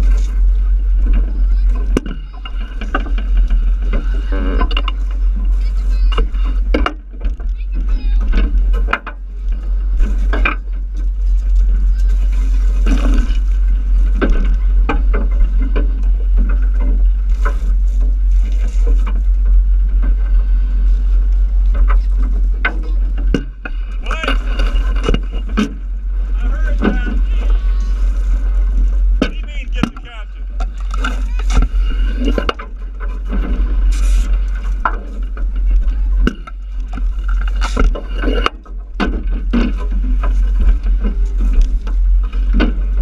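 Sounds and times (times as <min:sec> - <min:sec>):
boat engine rumble: 0:00.0 - 0:43.0
people's voices and shouts: 0:24.0 - 0:24.6, 0:26.3 - 0:28.2.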